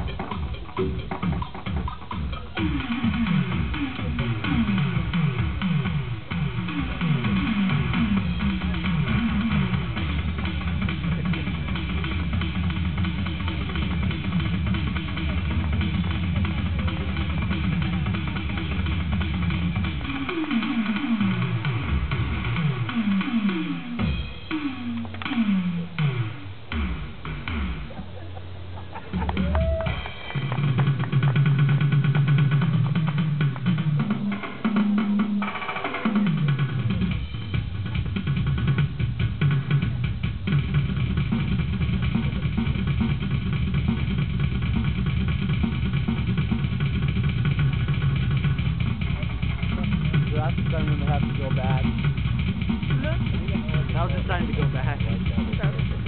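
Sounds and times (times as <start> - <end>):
electronic drum solo: 0.0 - 56.0.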